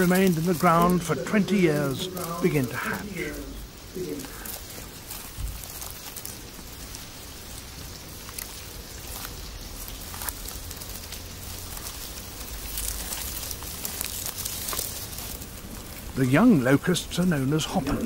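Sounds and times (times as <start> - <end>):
locusts crawling through grass: 0.0 - 18.0.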